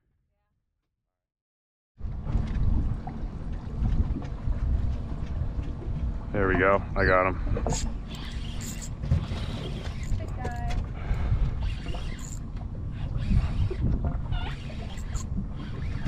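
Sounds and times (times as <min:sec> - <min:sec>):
wind buffeting microphone: 0:02.0 - 0:08.1, 0:08.9 - 0:16.0.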